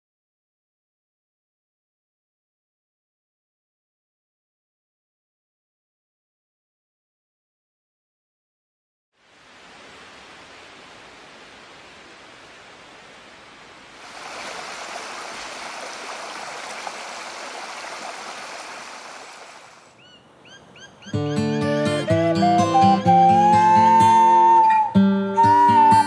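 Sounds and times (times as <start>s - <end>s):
stream running over stones: 9.2s - 20.0s
acoustic guitar music: 21.1s - 26.0s.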